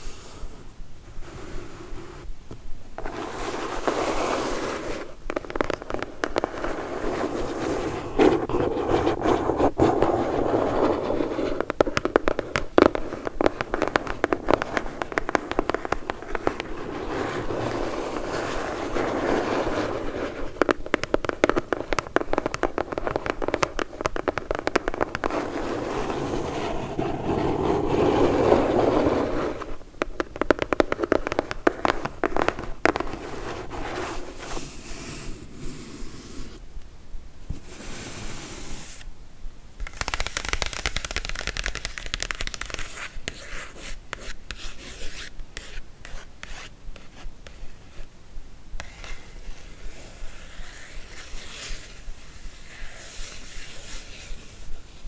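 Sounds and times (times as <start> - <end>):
fingernails scratching cardboard: 3.0 - 36.6, 39.8 - 48.0.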